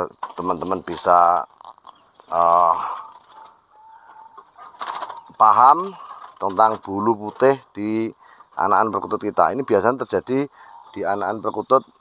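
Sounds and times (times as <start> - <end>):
faint bird calls: 1.8 - 6.4, 10.5 - 12.0.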